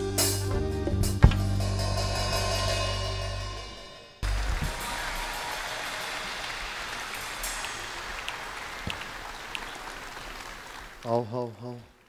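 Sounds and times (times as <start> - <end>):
audience applauding: 4.2 - 12.0
individual claps: 4.2 - 12.0.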